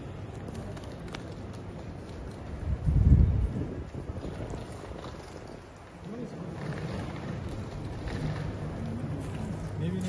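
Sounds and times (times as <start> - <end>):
airport terminal hum: 0.0 - 10.0.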